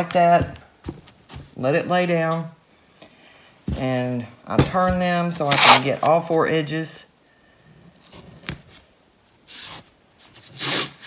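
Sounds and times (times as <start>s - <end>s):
tape ripping off roll: 5.4s - 6.1s, 10.4s - 11.0s.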